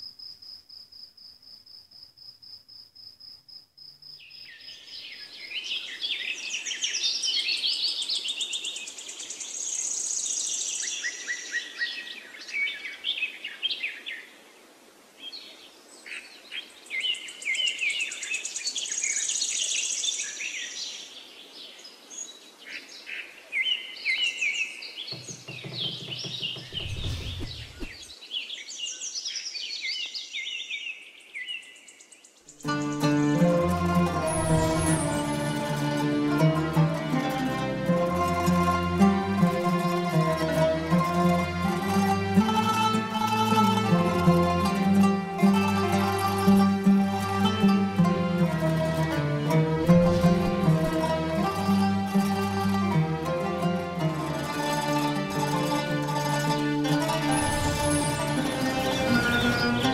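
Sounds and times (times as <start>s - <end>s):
crickets chirping: 0.0s - 4.9s
birds singing and chirping: 23.6s - 33.4s, 57.2s - 59.9s
low rumble: 26.6s - 28.1s.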